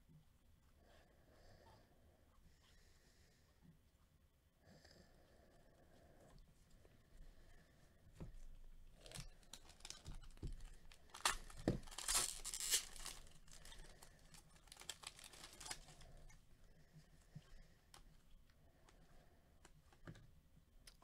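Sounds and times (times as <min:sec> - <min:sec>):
foil wrapper tearing and crinkling: 0:09.0 - 0:16.0.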